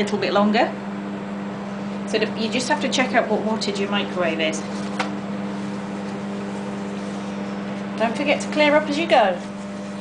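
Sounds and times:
microwave oven humming: 0:00.0 - 0:10.0.

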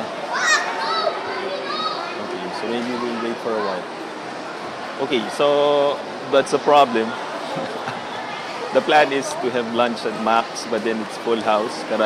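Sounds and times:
crowd chatter: 0:00.0 - 0:12.0
child shrieking: 0:00.3 - 0:02.0.

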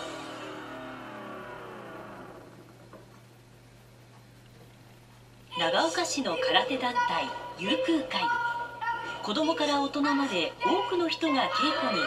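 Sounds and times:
steady low hum: 0:00.0 - 0:10.8.

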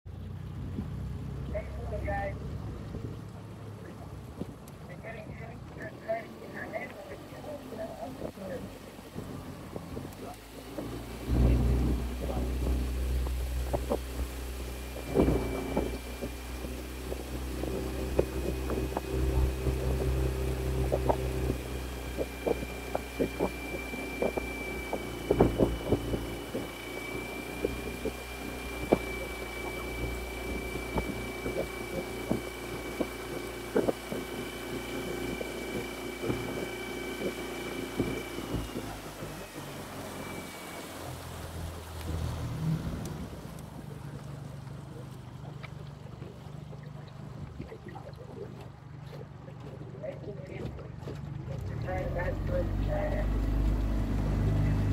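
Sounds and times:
boat motor humming: 0:00.0 - 0:54.9
water knocks and splashes: 0:02.4 - 0:04.9, 0:08.1 - 0:54.9.

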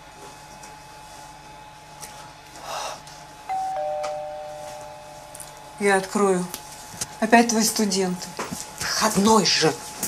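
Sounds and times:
two-note doorbell chime: 0:03.5 - 0:05.5.

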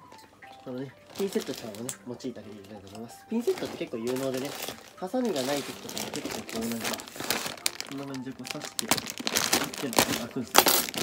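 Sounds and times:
plastic bag crinkling: 0:00.6 - 0:11.0.

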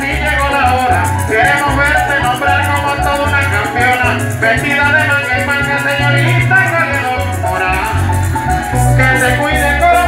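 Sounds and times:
deep bass line: 0:00.0 - 0:10.0
man singing: 0:00.0 - 0:10.0
maracas shaking: 0:00.0 - 0:10.0.

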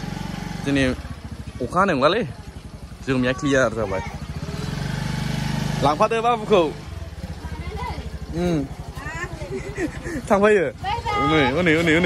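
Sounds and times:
motor scooter engine: 0:00.0 - 0:12.0
voices: 0:00.6 - 0:12.0.

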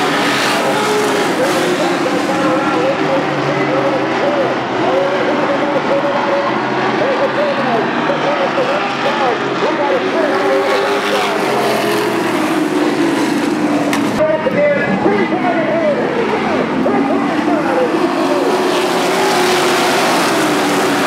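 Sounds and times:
racing truck engines: 0:00.0 - 0:21.0.

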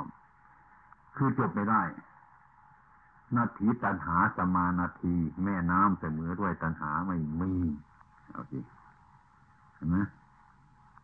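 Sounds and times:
recording hiss: 0:00.0 - 0:11.0
person speaking: 0:01.2 - 0:02.0, 0:03.3 - 0:08.8, 0:09.8 - 0:10.2.

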